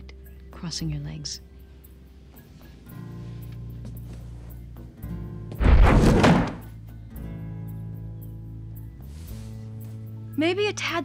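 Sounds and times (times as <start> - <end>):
soft background music: 0.0 - 11.0
person dropping into wooden chair: 5.5 - 6.7.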